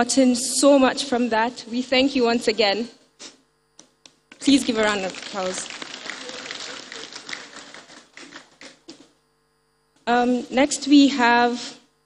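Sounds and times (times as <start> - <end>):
audience applauding: 4.4 - 9.0.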